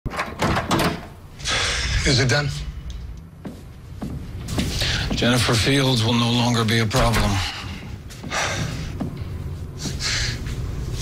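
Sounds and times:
door opening and shutting: 0.1 - 1.8, 6.9 - 7.6.

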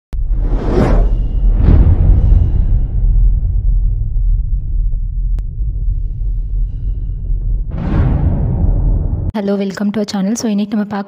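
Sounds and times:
deep rumble: 0.1 - 9.4
whooshes: 0.2 - 9.3.

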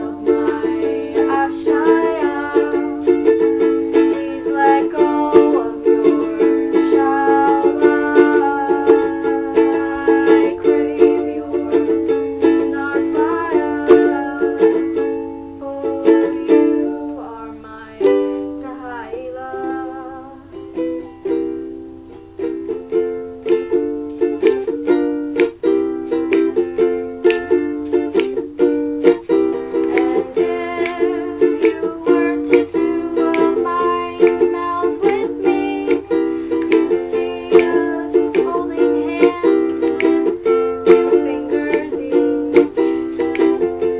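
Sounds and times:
ukulele strumming chords: 0.0 - 43.9.

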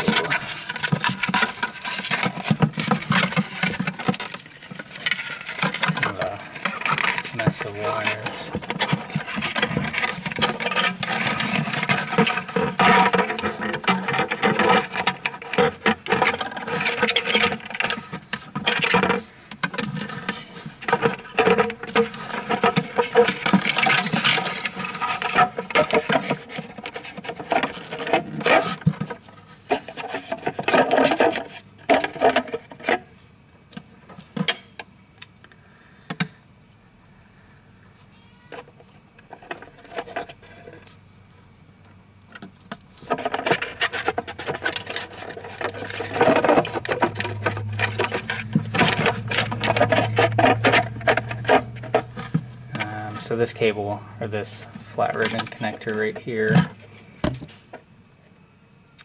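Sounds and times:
plastic parts rubbing and scraping: 0.0 - 34.6, 37.4 - 57.9.

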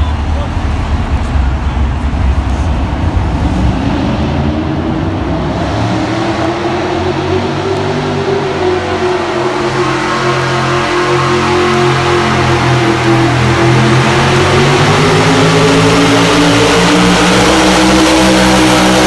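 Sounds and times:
truck engine running hard: 0.0 - 19.0.

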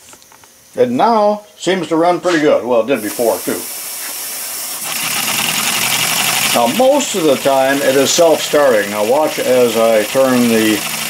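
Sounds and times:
compressed air hissing: 3.0 - 11.0
model engine exhaust puffs: 3.0 - 11.0.

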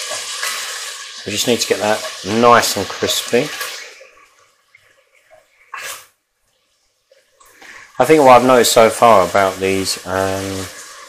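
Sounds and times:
bacon frying: 0.0 - 11.0.

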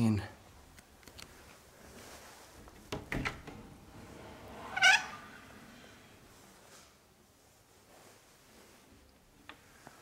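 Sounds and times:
hinge squeaking: 2.9 - 5.7.

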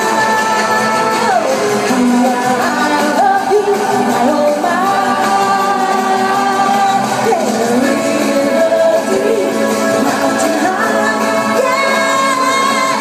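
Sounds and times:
woman singing into microphone: 0.0 - 13.0.

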